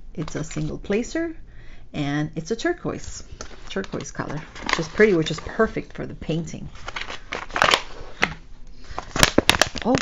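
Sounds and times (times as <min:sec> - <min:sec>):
plastic pouch crinkling: 0:03.4 - 0:06.0, 0:06.7 - 0:10.0.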